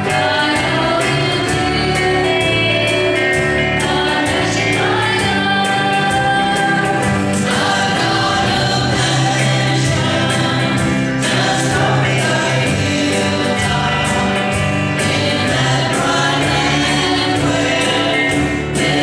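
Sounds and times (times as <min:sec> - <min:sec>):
band playing gospel song: 0:00.0 - 0:19.0
singers in harmony: 0:00.0 - 0:19.0.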